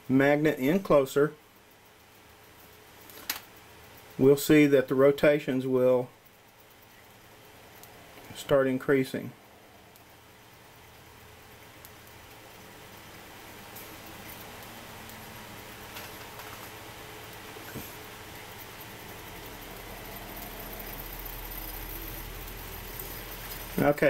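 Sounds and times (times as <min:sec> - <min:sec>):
faint ticks: 0:00.7 - 0:05.4, 0:06.1 - 0:08.6, 0:09.6 - 0:24.0
small electric motor spinning: 0:10.5 - 0:24.0.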